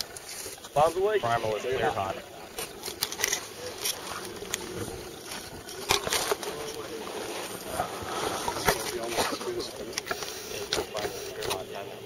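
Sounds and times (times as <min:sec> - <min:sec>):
faint voices: 0:00.0 - 0:12.0
wind buffeting microphone: 0:01.8 - 0:09.9.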